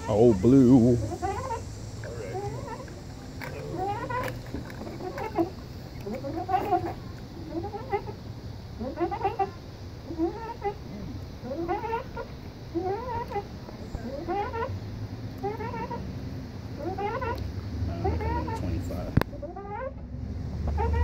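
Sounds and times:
swing chain squeaking: 1.1s - 8.1s.

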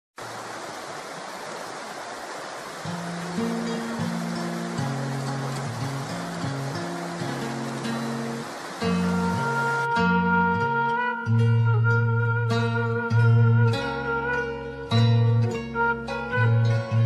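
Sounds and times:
water splashing into a pool: 0.2s - 9.9s
slow background music: 2.9s - 17.0s.

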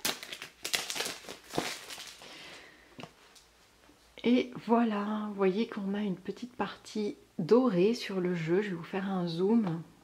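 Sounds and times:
plastic shrink-wrap crinkling: 0.0s - 2.6s.

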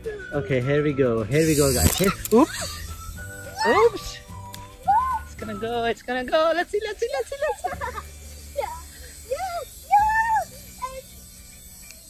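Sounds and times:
high-pitched excited exclamation: 3.5s - 4.1s, 4.8s - 5.3s, 8.7s - 11.1s.

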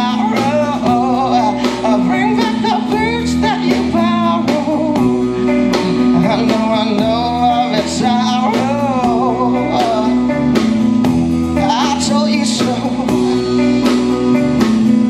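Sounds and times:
man singing: 0.0s - 10.8s, 11.4s - 14.6s
drum kit: 0.0s - 15.0s
electric bass: 0.0s - 15.0s
electric guitar: 0.0s - 15.0s.

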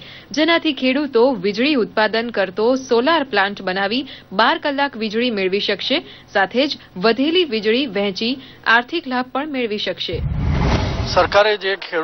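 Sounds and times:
whoosh with deep rumble: 10.1s - 11.4s.

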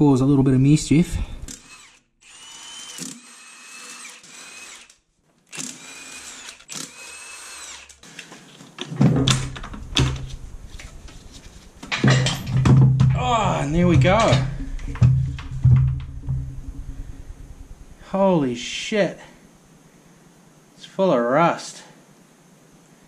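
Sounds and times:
power drill motor whining: 1.4s - 8.6s.

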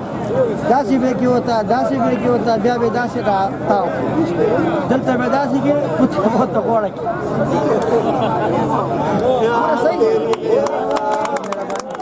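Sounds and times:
voices talking over each other: 0.0s - 12.0s.

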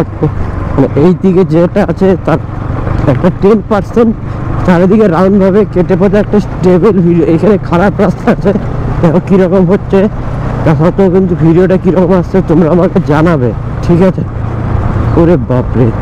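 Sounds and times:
man talking: 0.0s - 14.3s, 15.1s - 16.0s
motorcycle engine droning: 0.0s - 16.0s.

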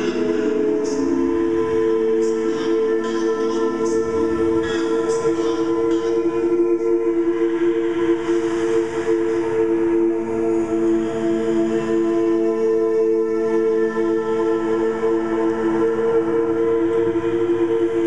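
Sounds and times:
a cappella voices holding a chord: 0.0s - 18.0s.

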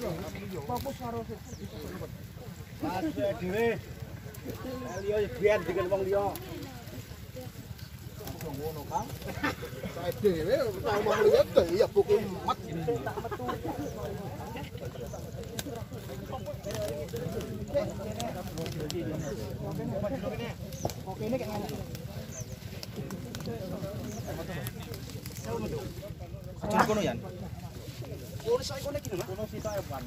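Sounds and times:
background chatter: 0.0s - 30.0s
men talking over one another: 0.0s - 30.0s.

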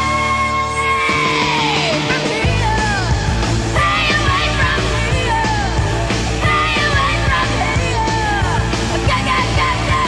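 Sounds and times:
loud rock music: 0.0s - 10.0s.

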